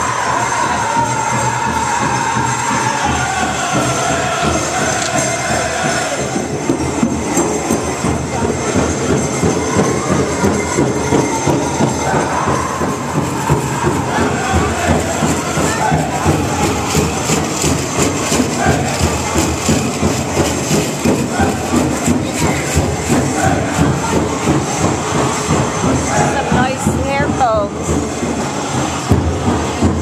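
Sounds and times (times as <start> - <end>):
fast steady drumbeat: 0.0 - 30.0.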